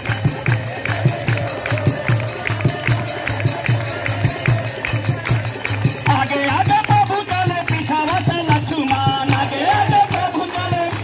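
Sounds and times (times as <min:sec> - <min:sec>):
hand claps: 0:00.0 - 0:11.0.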